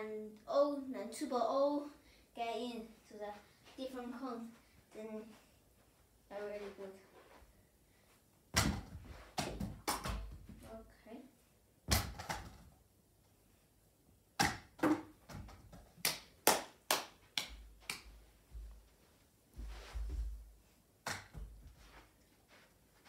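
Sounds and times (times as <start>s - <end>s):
tennis balls knocking on plastic: 14.4s - 16.0s.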